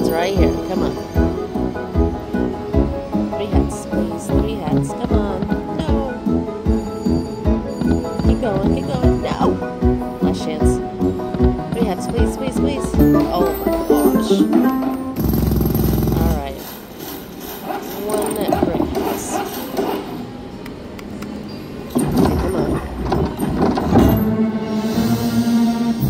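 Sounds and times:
slot machine music and effects: 11.8 - 16.6.

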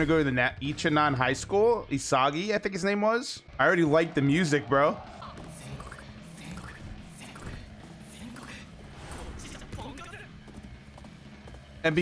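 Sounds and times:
faint dialogue: 0.0 - 10.8
soundtrack music playing low: 0.0 - 12.0.

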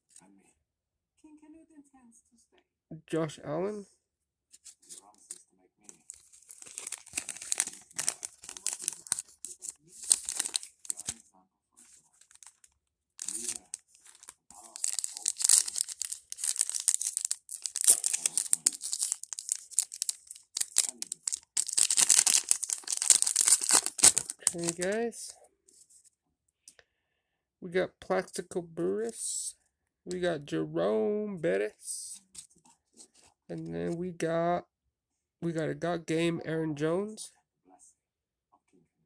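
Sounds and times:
foil wrapper crinkling and tearing: 5.9 - 11.2, 12.1 - 25.0.

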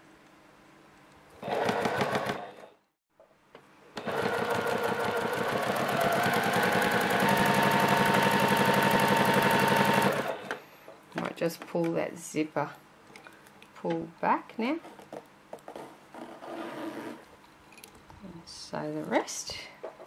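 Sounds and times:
sewing machine stitching: 1.4 - 2.7, 4.0 - 10.6.

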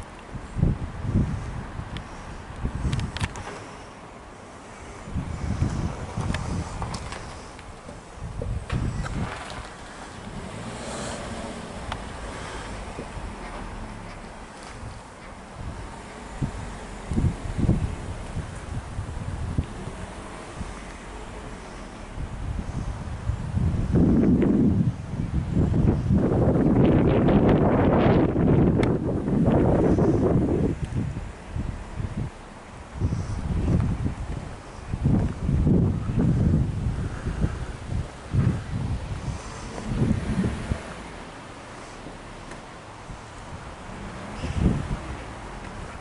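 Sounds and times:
wind buffeting microphone: 0.0 - 46.0.

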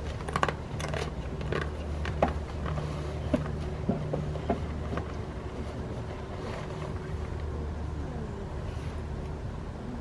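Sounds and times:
goats crunching apple: 0.0 - 5.9
steady low rumble: 0.0 - 10.0.

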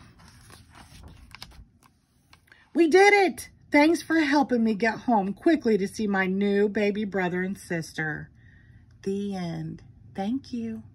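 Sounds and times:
book page turning: 0.0 - 2.6.

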